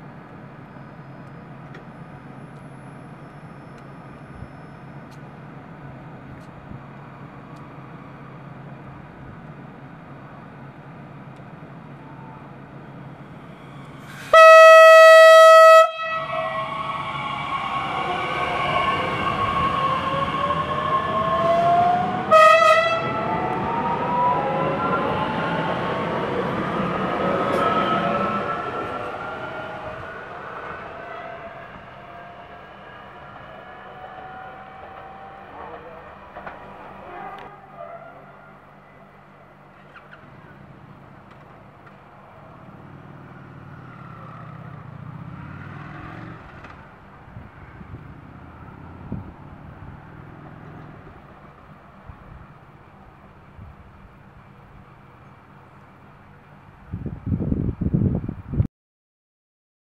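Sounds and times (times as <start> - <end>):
train horn: 14.2 - 23.5.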